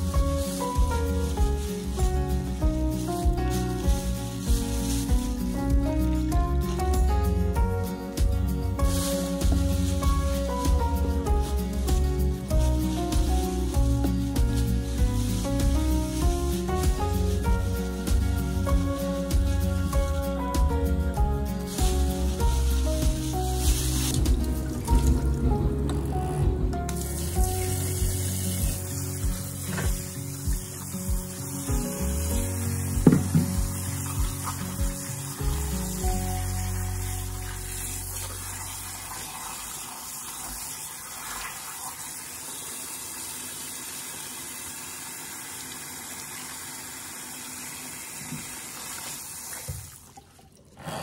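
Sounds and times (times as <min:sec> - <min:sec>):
faucet water splashing: 0:00.0 - 0:19.6, 0:21.2 - 0:25.6, 0:26.9 - 0:50.9
background music: 0:00.0 - 0:39.5
brief thump: 0:33.0 - 0:33.6.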